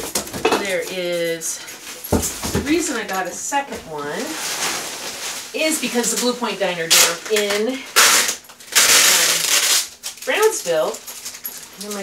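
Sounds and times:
packing material rustling: 0:04.1 - 0:12.0.

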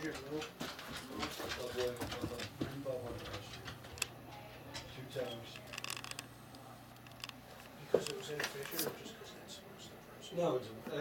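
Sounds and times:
men talking: 0:00.0 - 0:03.8, 0:07.7 - 0:11.0.

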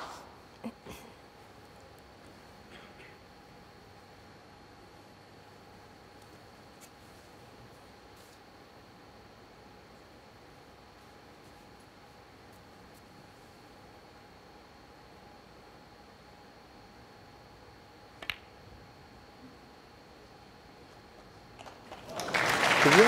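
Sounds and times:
snooker balls clicking: 0:18.1 - 0:18.6, 0:21.5 - 0:22.2.

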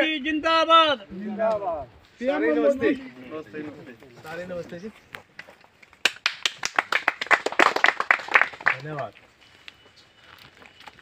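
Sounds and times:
people clapping: 0:05.9 - 0:09.2.

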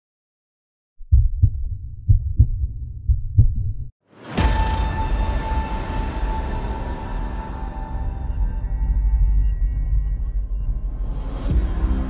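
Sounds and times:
deep low rumble: 0:01.0 - 0:03.9
heartbeat-like double thumps: 0:01.0 - 0:03.9.

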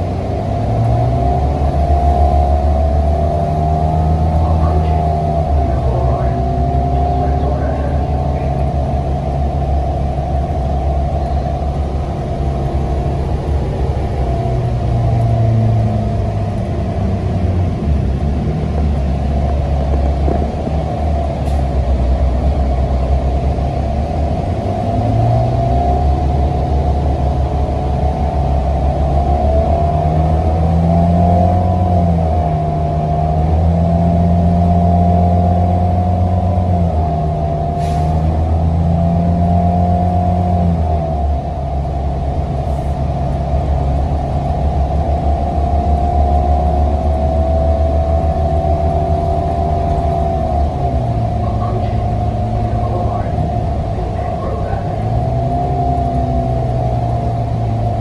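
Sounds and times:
bus engine humming: 0:00.0 - 0:58.0.

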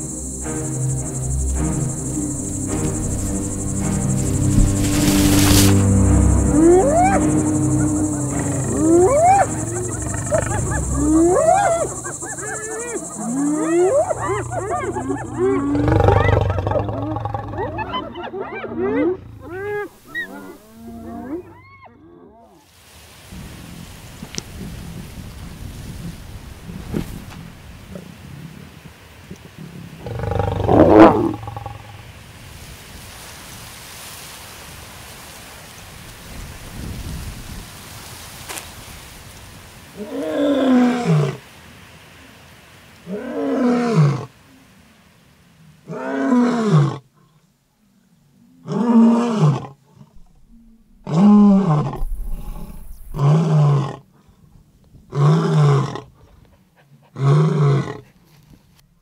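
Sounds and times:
high insect chirr: 0:00.0 - 0:17.9, 0:30.0 - 0:32.2, 0:50.3 - 0:53.3
hyenas whooping: 0:02.4 - 0:22.6
lions snarling and growling: 0:08.1 - 0:21.5, 0:30.0 - 0:31.9, 0:48.6 - 0:54.0.

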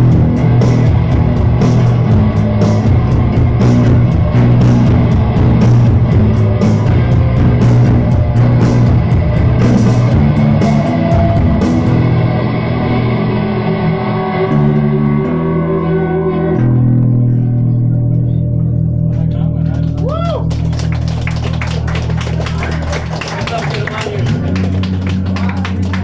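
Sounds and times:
drums: 0:00.0 - 0:15.2, 0:19.1 - 0:26.0
bent guitar note: 0:00.0 - 0:20.4
droning bass: 0:00.0 - 0:26.0
electric guitar: 0:00.0 - 0:26.0.

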